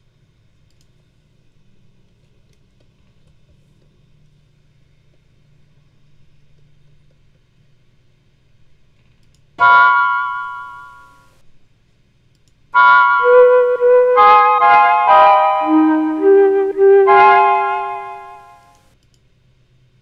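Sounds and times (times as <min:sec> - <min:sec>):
mellotron chords: 0:09.6 - 0:11.0, 0:12.8 - 0:18.7.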